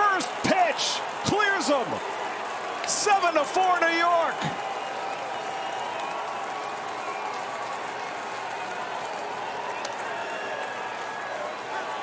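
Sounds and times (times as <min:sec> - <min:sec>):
stadium crowd cheering and applauding: 0:00.0 - 0:12.0.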